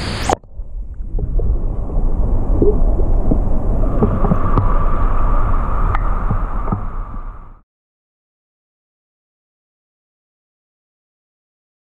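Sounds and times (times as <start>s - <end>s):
water sloshing and gurgling: 0.0s - 7.6s.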